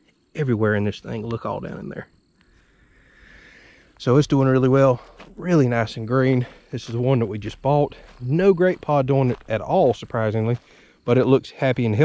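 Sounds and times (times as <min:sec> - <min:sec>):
insects chirring: 0:00.0 - 0:12.0.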